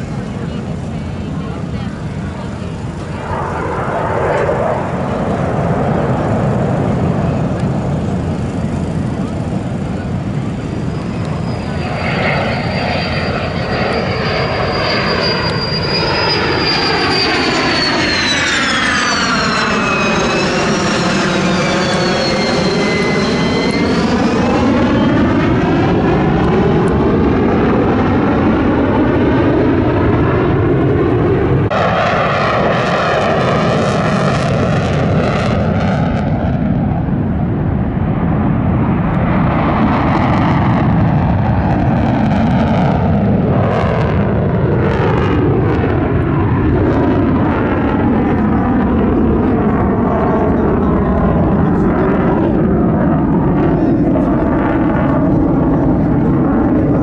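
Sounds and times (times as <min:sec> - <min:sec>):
jet engine roar with high whine: 0:00.0 - 0:57.0.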